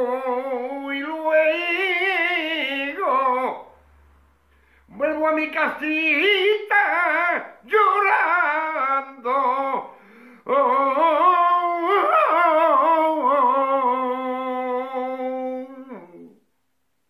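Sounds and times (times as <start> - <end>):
man singing unaccompanied: 0.0 - 3.8, 4.9 - 16.4.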